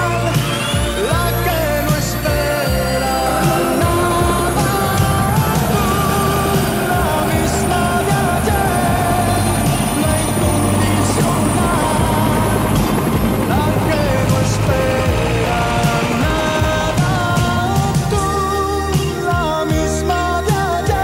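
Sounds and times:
instrumental music: 0.0s - 21.0s
low rumble: 0.0s - 21.0s.

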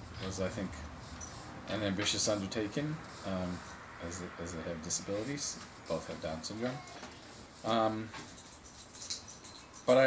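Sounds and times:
faint background noise: 0.0s - 10.0s
man speaking: 1.7s - 7.0s.

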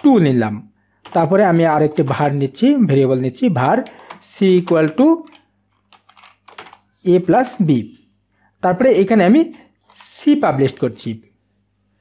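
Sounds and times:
keyboard typing: 1.0s - 2.1s, 3.8s - 6.9s.

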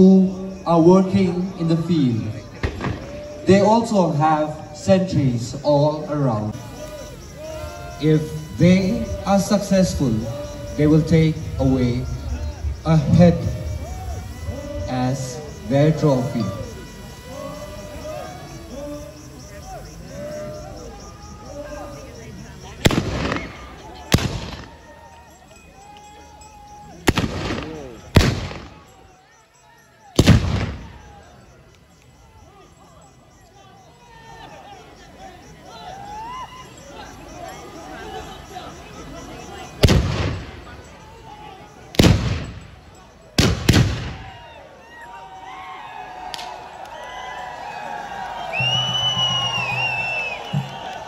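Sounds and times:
voices calling out: 0.0s - 51.0s
men yelling war cries: 2.5s - 22.2s
loud gunshots with echo: 22.8s - 24.7s, 27.1s - 28.8s, 30.2s - 31.0s, 39.8s - 40.6s, 42.0s - 42.6s, 43.4s - 44.3s
shrill whoop: 35.9s - 36.9s.

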